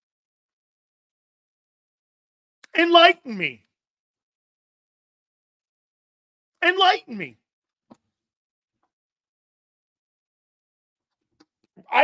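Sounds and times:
man speaking loudly: 0:02.6 - 0:03.6, 0:06.6 - 0:07.4, 0:11.8 - 0:12.0.

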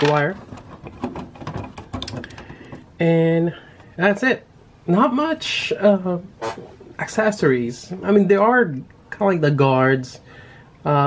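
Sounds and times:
plastic parts clicking and tapping: 0:00.0 - 0:02.9.

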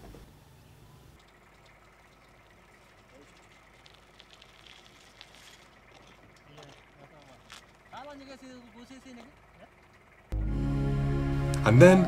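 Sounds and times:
faint ticks: 0:01.2 - 0:07.8
low hum: 0:10.2 - 0:12.0.

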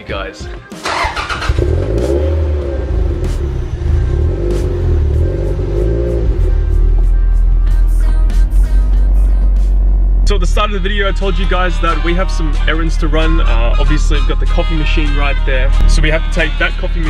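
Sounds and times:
music: 0:00.0 - 0:17.0
car engine idling: 0:00.9 - 0:11.1.

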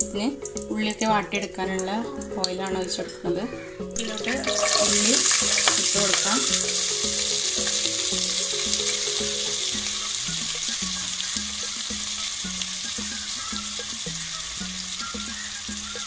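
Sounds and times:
onions sizzling in oil: 0:04.0 - 0:16.0.

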